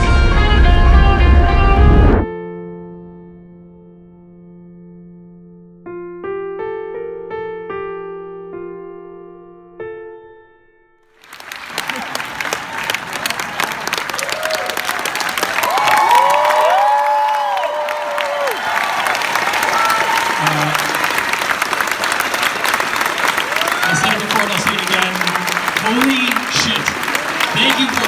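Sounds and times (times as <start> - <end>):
audience applauding: 11.2 - 28.0
crowd cheering and whooping: 11.2 - 28.0.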